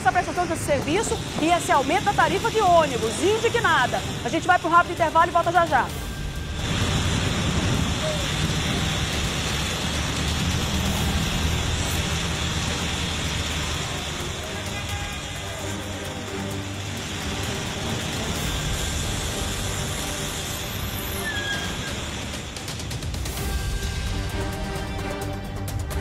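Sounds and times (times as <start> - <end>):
bus engine rumble: 0.0 - 26.0
street traffic: 0.0 - 26.0.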